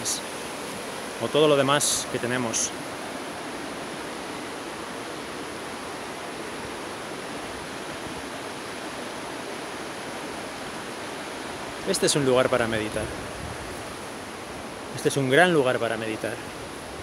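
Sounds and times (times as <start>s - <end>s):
man speaking: 1.2s - 2.7s, 11.9s - 13.1s, 15.0s - 16.4s.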